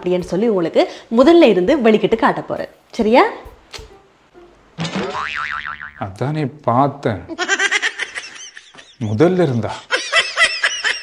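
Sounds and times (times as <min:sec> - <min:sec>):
cartoon boing sound effect: 0:04.8 - 0:06.0.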